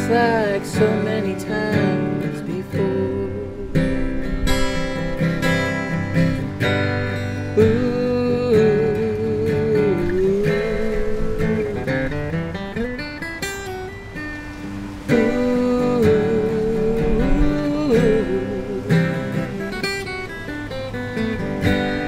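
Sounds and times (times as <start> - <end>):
person singing wordless ooh: 0.0 - 4.2, 7.4 - 12.2, 14.9 - 19.8
acoustic guitar strumming: 0.0 - 22.0.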